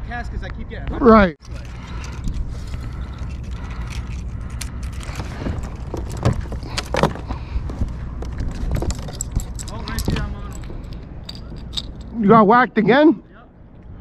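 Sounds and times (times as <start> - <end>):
wind rumble on microphone: 0.0 - 12.2.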